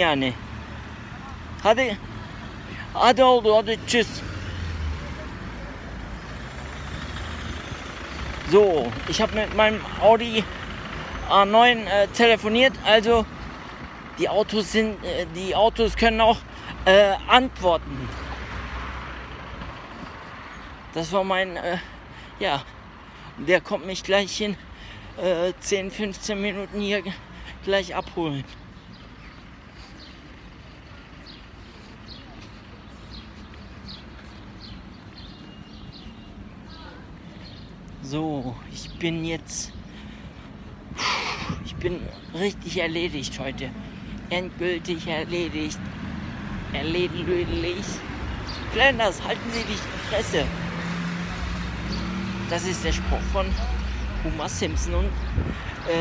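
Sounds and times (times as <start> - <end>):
street traffic rumble: 0.0 - 56.0
bird chirps: 31.2 - 37.8.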